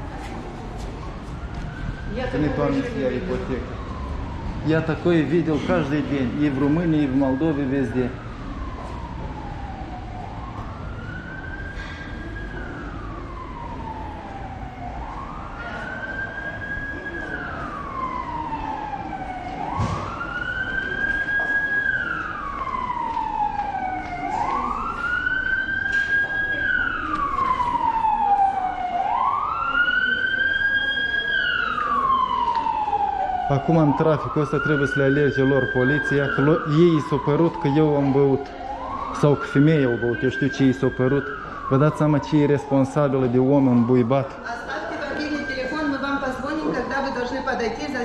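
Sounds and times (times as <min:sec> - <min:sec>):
emergency vehicle siren wailing: 0:00.0 - 0:48.0.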